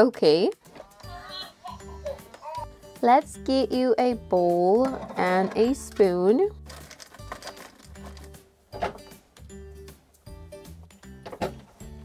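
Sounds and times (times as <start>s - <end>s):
light background music: 0.0s - 12.0s
toy kitchen items knocking: 4.7s - 9.0s.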